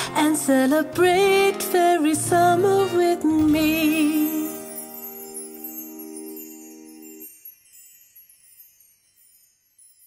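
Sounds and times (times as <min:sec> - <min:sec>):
high sparkling chime tinkle: 0:03.5 - 0:10.0.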